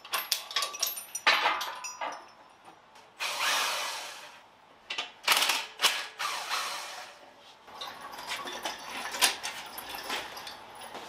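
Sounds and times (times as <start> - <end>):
tool rattling and clicking: 0.0 - 2.3, 7.7 - 11.0.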